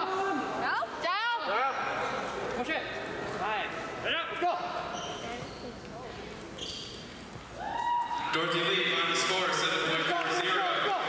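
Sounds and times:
shoes squeaking on gym floor: 0:04.8 - 0:07.5.

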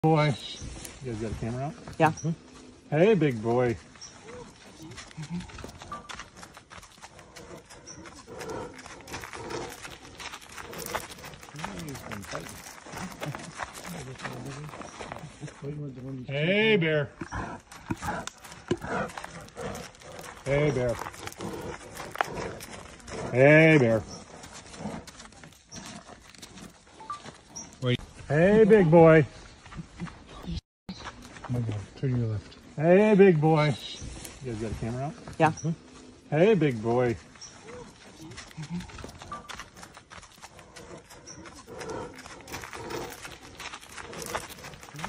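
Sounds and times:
footsteps crunching on gravel: 0:00.3 - 0:45.0
bear breathy huffs: 0:07.2 - 0:11.3, 0:40.5 - 0:44.5.

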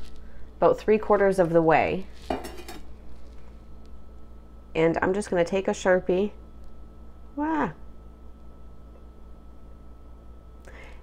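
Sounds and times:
low steady hum: 0:00.0 - 0:11.0
metal kitchenware clattering: 0:02.3 - 0:02.9.

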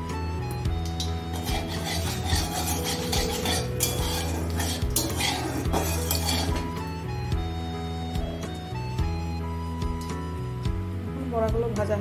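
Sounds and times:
background music: 0:00.0 - 0:12.0
spoon clinking against pan: 0:00.8 - 0:06.8
metal spoon scraping a pan: 0:00.8 - 0:07.1.

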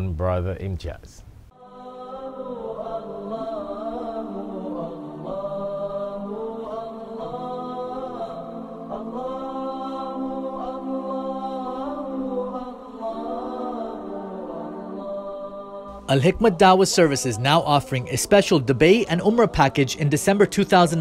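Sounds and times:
wordless vocal chant: 0:01.5 - 0:21.0.

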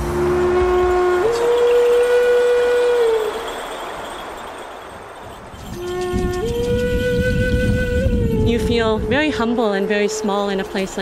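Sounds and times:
flute music: 0:00.0 - 0:04.6, 0:05.5 - 0:11.0.

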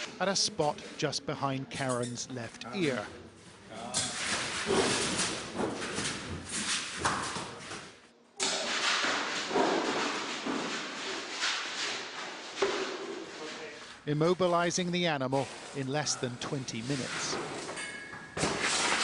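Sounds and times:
noisy movement echoing: 0:00.0 - 0:19.0.

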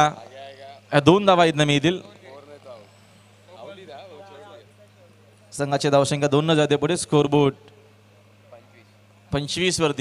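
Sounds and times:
distant voices talking: 0:00.0 - 0:10.0
steady low hum: 0:00.0 - 0:10.0.

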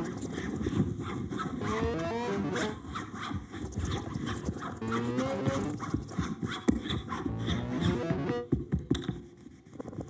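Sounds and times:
electronic scratchy rasps and clicks: 0:01.6 - 0:02.8, 0:04.8 - 0:05.8, 0:07.3 - 0:08.6
rising pitched tones: 0:01.6 - 0:02.8, 0:04.8 - 0:05.8, 0:07.3 - 0:08.5.

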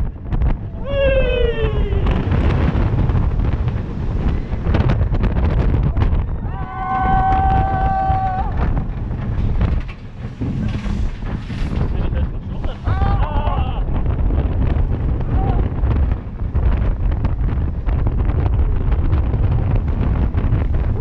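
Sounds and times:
roller coaster rumble: 0:00.0 - 0:21.0
wind buffeting microphone: 0:00.0 - 0:21.0
rider yelling: 0:00.8 - 0:02.3, 0:06.3 - 0:08.6
long held scream: 0:06.4 - 0:08.5.

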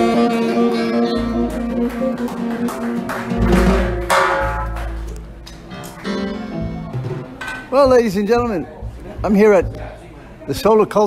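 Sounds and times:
small jazz band: 0:00.0 - 0:10.4
plucked string chord: 0:03.4 - 0:07.2.

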